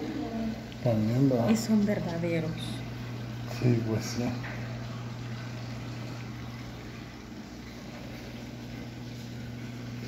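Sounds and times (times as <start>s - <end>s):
water pump hum: 0.0s - 10.0s.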